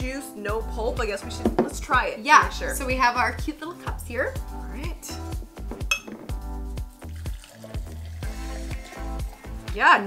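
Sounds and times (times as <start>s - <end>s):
background music with low beat: 0.0s - 10.0s
glassware clinking on table: 5.9s - 6.3s.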